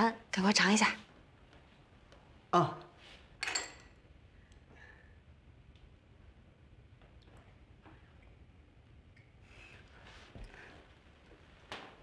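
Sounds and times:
chopsticks clinking on ceramic: 3.4 - 4.0.

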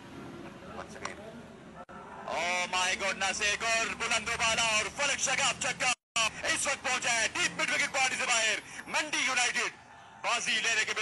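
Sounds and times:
commentator talking quickly: 2.3 - 11.0.

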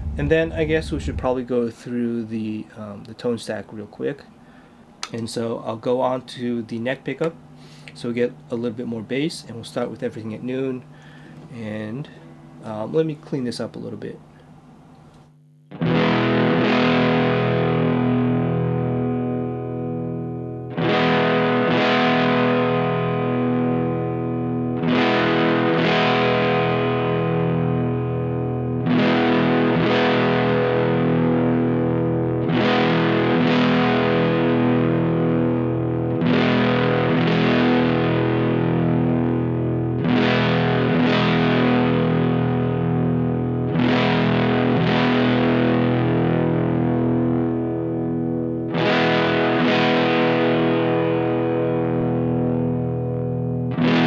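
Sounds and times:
overdriven electric guitar chords: 0.0 - 1.6, 10.8 - 12.6, 15.0 - 54.0.

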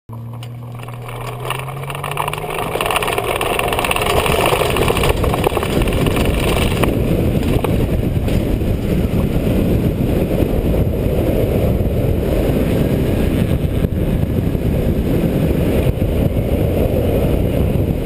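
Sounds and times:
plane engine at full power: 0.1 - 18.0
rushing noise: 0.6 - 18.0.

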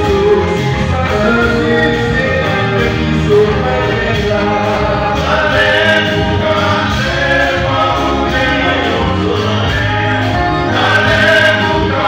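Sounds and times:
low band accompaniment: 0.0 - 12.0
male vocal group singing hymn: 0.0 - 12.0.

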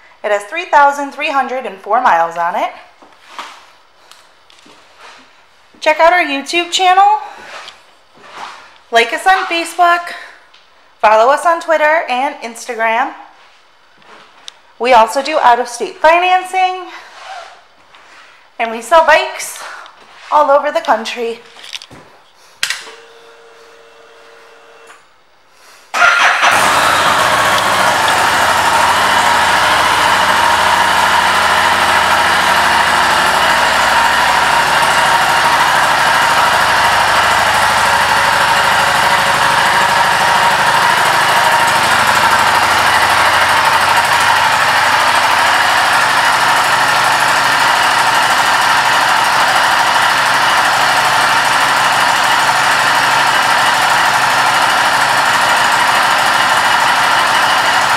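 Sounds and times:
motorcycle engine starting and idling: 26.0 - 57.9.

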